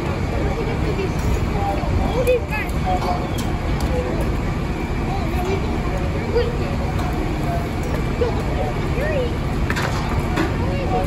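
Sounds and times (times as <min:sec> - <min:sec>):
diesel engine rumbling: 0:00.0 - 0:11.0
distant voices: 0:00.0 - 0:11.0.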